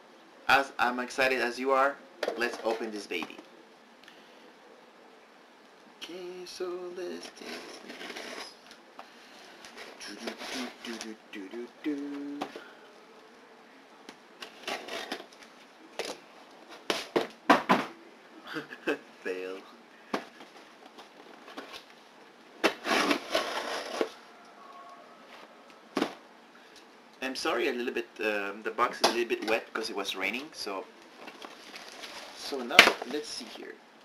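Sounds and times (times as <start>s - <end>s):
packing tape and cardboard ripping: 7.3s - 8.6s, 14.4s - 17.4s, 22.6s - 24.2s
scissors cutting cardboard: 22.6s - 24.2s.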